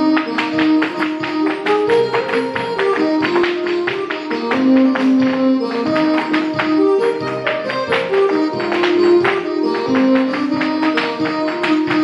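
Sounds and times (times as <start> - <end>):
folk dance tune: 0.0 - 12.0
hard shoes striking floor: 0.0 - 12.0.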